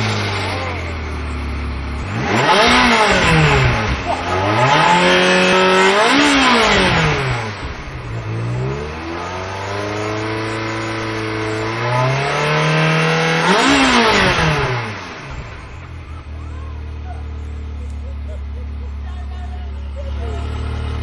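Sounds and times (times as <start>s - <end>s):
sports car engine revving: 0.0s - 21.0s.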